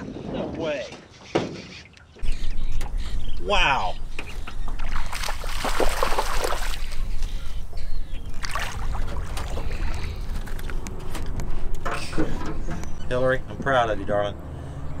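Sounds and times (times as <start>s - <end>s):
fish splashing in water: 4.7s - 7.1s, 8.4s - 10.6s.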